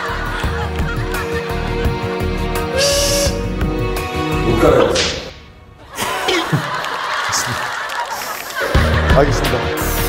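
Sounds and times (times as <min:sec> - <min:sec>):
comic honking sound effect: 0:02.7 - 0:03.5.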